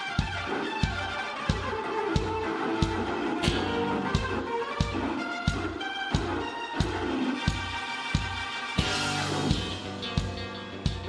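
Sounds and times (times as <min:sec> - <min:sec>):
keyboard solo: 0:00.0 - 0:11.0
kick drum beat: 0:00.0 - 0:11.0.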